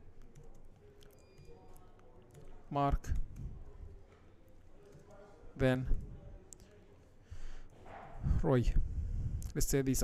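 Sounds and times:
faint keyboard typing: 0:00.0 - 0:05.5.

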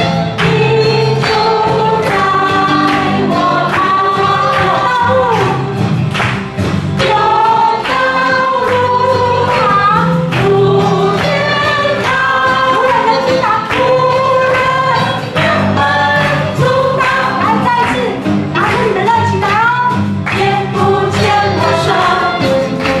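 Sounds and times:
band accompaniment: 0:00.0 - 0:23.0
voices singing together: 0:00.2 - 0:06.0, 0:06.9 - 0:19.6, 0:20.2 - 0:23.0.

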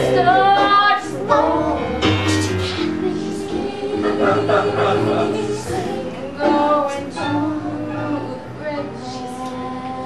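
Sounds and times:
woman singing lead: 0:00.0 - 0:02.1, 0:02.8 - 0:10.0
chorus singing: 0:00.0 - 0:10.0.

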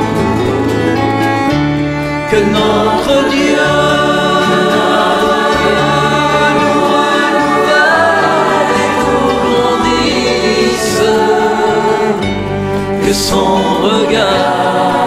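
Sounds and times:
low accompaniment: 0:00.0 - 0:15.0
choir singing a hymn: 0:02.1 - 0:15.0.

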